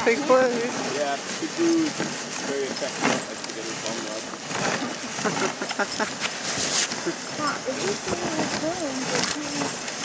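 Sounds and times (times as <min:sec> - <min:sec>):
dog sled hissing over snow: 0:00.0 - 0:10.0
sled scraping and knocking: 0:00.0 - 0:10.0.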